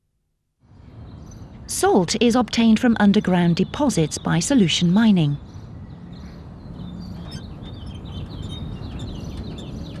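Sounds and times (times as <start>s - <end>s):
birds chirping: 0.8s - 10.0s.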